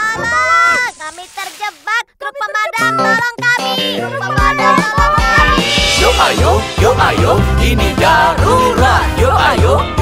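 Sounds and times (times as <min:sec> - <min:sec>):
cartoon character singing: 0:01.8 - 0:06.2
light backing music: 0:03.6 - 0:10.0.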